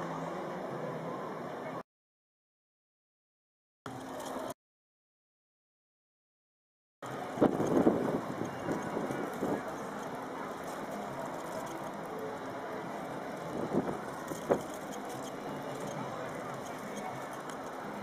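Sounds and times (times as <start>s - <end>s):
distant town traffic: 7.0s - 18.0s.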